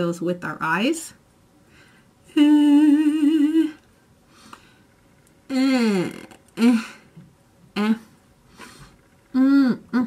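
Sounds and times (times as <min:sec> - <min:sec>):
woman humming a held note: 0:02.3 - 0:03.8.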